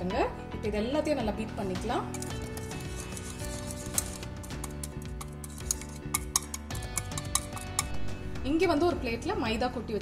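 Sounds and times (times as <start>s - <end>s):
background music: 0.0s - 10.0s
whisk clicking against glass dish: 2.2s - 8.0s.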